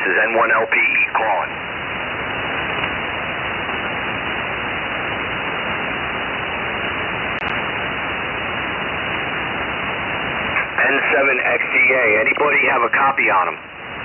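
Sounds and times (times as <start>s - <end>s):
radio static hiss: 0.0s - 14.0s.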